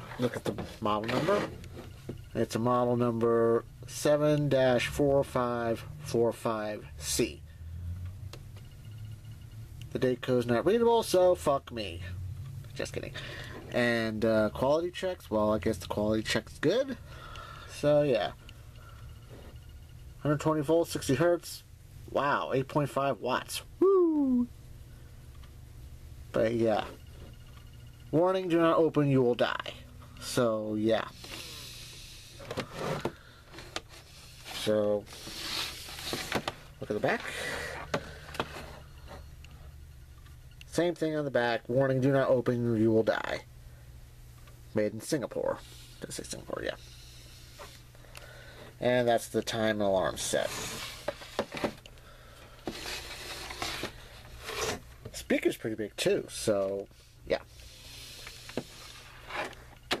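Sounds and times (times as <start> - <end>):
cabinet scraping against table: 0.0 - 1.9, 32.4 - 33.2, 50.3 - 51.8, 52.7 - 54.9
fluorescent light buzz: 0.0 - 60.0.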